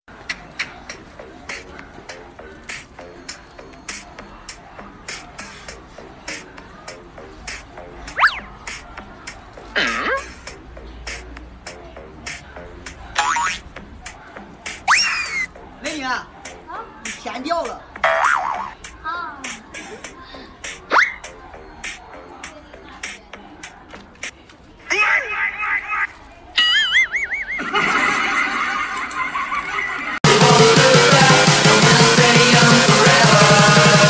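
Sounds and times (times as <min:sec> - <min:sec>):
faint background music: 0:00.1 - 0:30.2.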